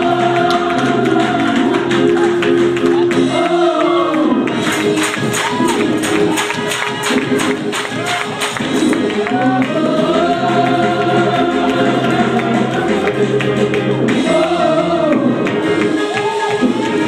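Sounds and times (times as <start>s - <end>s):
gospel group singing: 0.0s - 6.0s, 8.1s - 17.0s
low band accompaniment: 0.0s - 17.0s
quick percussion beat: 4.5s - 17.0s.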